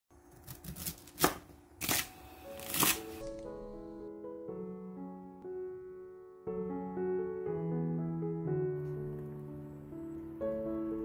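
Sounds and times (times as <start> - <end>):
knife crunching through cabbage: 0.3 - 3.2
soft piano music: 2.4 - 11.0.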